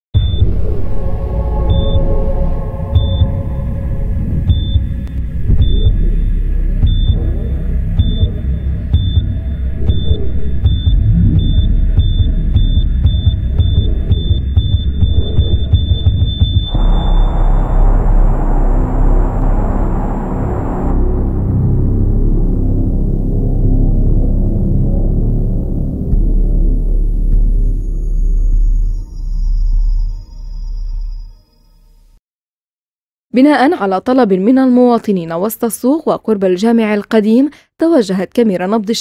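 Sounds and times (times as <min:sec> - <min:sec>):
high electronic beep: 0:00.2 - 0:00.6, 0:01.7 - 0:02.2, 0:02.8 - 0:03.6, 0:04.5 - 0:07.3, 0:08.0 - 0:18.8
deep rumbling bass: 0:00.2 - 0:31.3.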